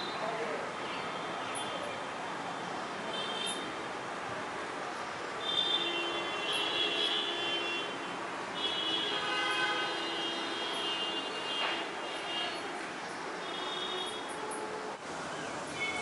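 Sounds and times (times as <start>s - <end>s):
road traffic: 0.0s - 16.0s
vehicle horns blasting: 5.4s - 12.7s.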